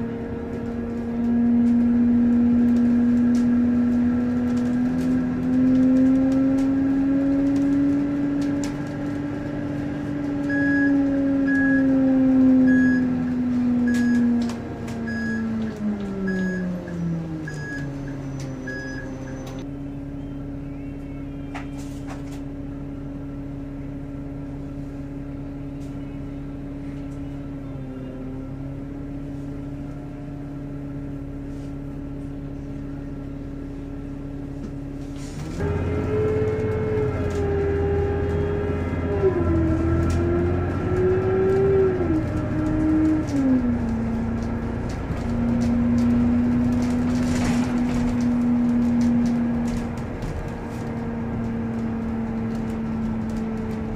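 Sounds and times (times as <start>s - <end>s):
bus engine whine and hum: 0.0s - 53.9s.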